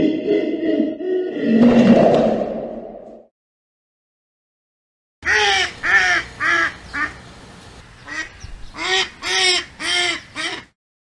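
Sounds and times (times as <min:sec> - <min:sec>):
duck quacking: 0:05.2 - 0:07.2, 0:08.1 - 0:10.7.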